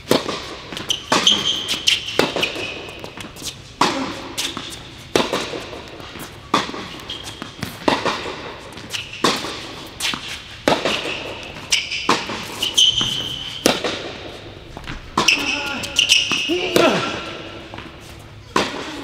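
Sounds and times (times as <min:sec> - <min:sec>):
racket hitting tennis ball: 0:00.0 - 0:19.0
shoe squeak on court: 0:00.7 - 0:03.6, 0:06.9 - 0:07.7, 0:08.8 - 0:13.8, 0:15.2 - 0:16.6.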